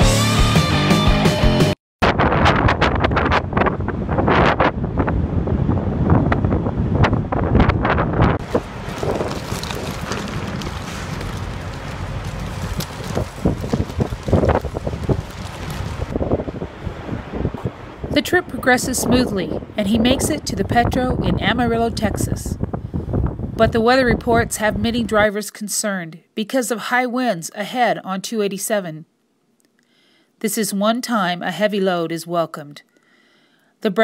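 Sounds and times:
background music: 0:00.0 - 0:01.7
wind buffeting microphone: 0:02.0 - 0:25.3.

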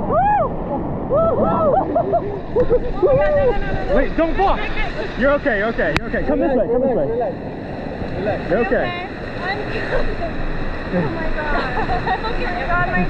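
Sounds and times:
river rapids rushing: 0:00.4 - 0:13.0.

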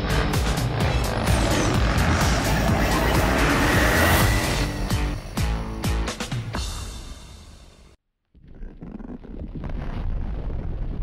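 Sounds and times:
motorcycle engine running: 0:00.0 - 0:05.5
music: 0:00.0 - 0:08.0.

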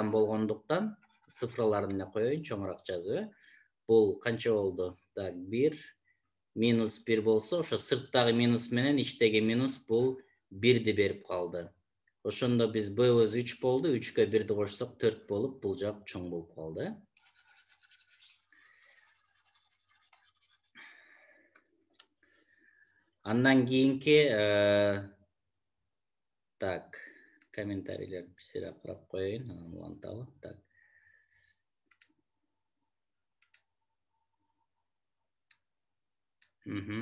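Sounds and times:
stylus scratching on a tablet: 0:17.1 - 0:20.8
computer mouse clicking: 0:31.9 - 0:32.1, 0:33.4 - 0:33.7.

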